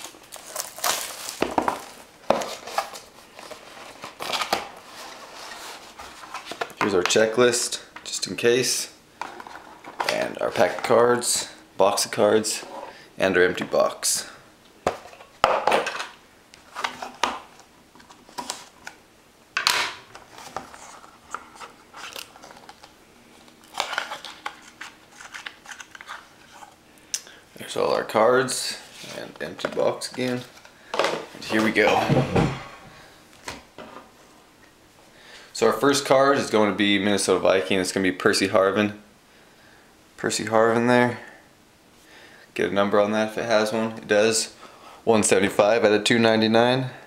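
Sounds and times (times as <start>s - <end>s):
packaging crinkling: 0.0s - 4.7s, 20.3s - 26.7s.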